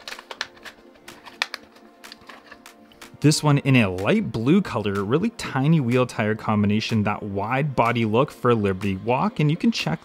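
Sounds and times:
plastic blister crackling and tearing: 0.0s - 2.7s
soft background music: 0.0s - 10.0s.

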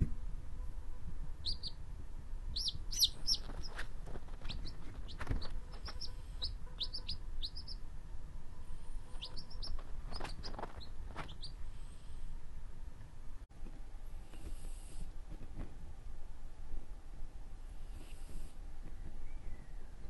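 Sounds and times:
quail chick peeping: 0.0s - 1.8s, 2.5s - 7.9s, 8.5s - 11.8s.

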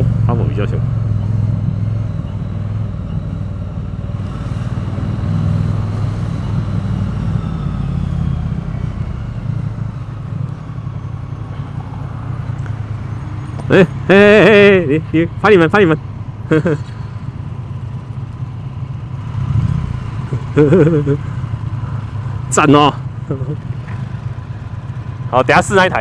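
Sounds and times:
motorcycle engine running: 12.4s - 26.0s.

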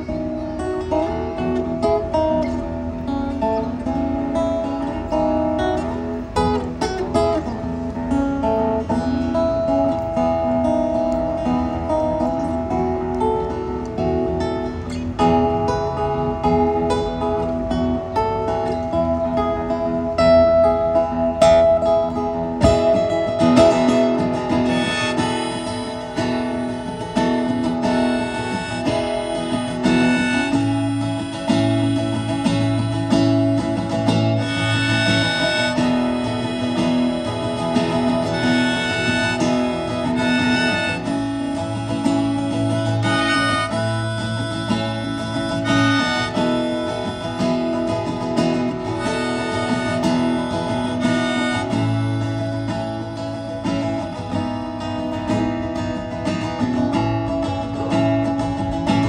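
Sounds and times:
acoustic guitar: 0.0s - 59.0s
held melody line: 0.0s - 59.0s.

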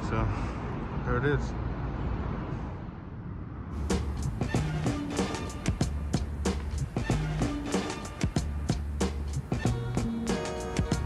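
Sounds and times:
outdoor background rumble: 0.0s - 11.0s
music: 3.8s - 11.0s.

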